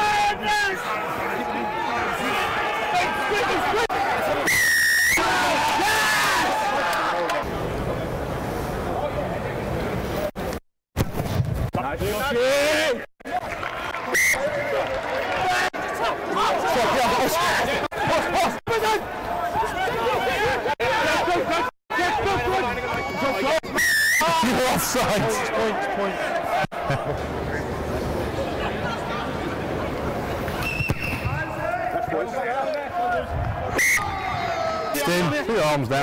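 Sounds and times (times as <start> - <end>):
players shouting: 0.0 - 7.5, 12.3 - 27.7, 29.6 - 36.0
whistle blast: 4.4 - 5.2, 14.1 - 14.5, 23.0 - 24.3, 30.6 - 31.4, 33.7 - 34.1
background murmur: 24.4 - 35.9.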